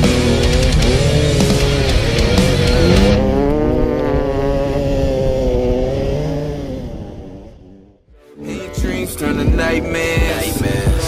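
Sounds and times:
music: 0.0 - 3.4, 8.0 - 11.0
dirt bike engine revving: 0.0 - 8.1.

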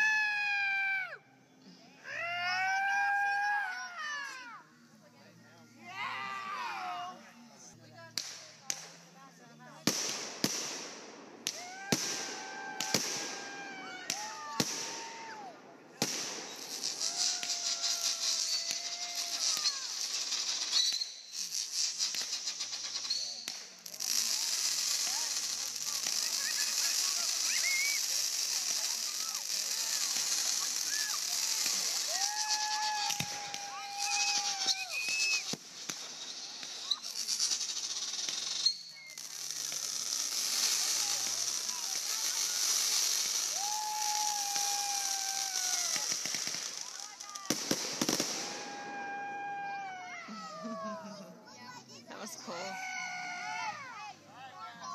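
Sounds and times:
fireworks crackling: 2.1 - 54.9
fireworks banging: 9.7 - 51.1.

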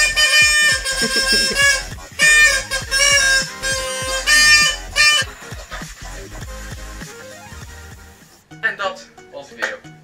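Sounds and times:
harmonica note: 0.0 - 5.6
electronic music with kick drum: 0.0 - 8.4.

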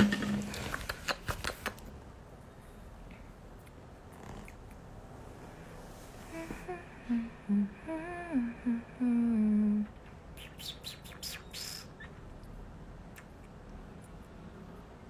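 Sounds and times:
soft hissing: 5.2 - 7.8
woman humming: 6.3 - 10.0.

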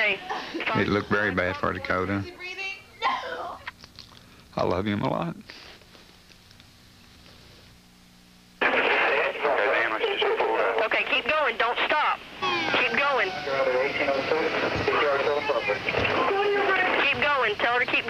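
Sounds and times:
radio voice chatter: 8.6 - 18.0
low hum: 12.0 - 18.0.

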